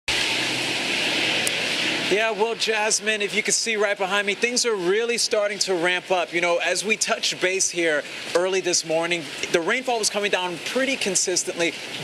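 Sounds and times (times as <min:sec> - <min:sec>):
heavy downpour rushing: 0:00.1 - 0:12.0.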